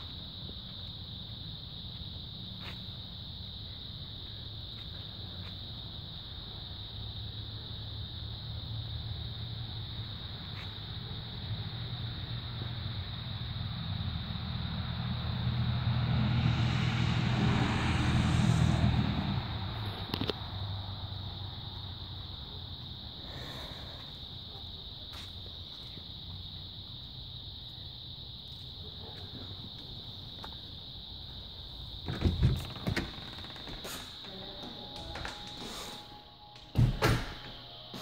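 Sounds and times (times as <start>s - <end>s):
crickets chirping: 0.0s - 38.0s
car passing by: 13.6s - 21.4s.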